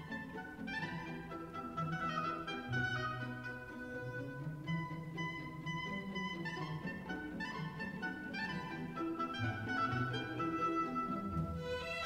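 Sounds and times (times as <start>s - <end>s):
orchestra playing ballet music: 0.0s - 12.0s.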